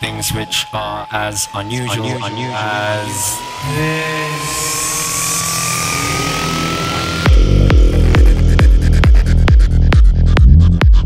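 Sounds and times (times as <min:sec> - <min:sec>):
electronic noise wash: 0:00.0 - 0:10.0
synth tone gliding upward: 0:00.0 - 0:10.0.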